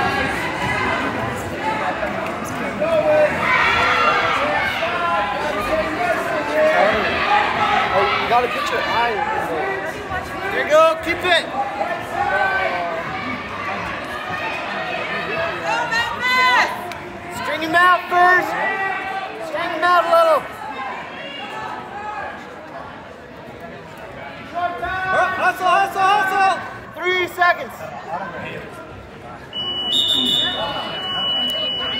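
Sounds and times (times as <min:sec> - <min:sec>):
crowd chatter echoing: 0:00.0 - 0:31.9.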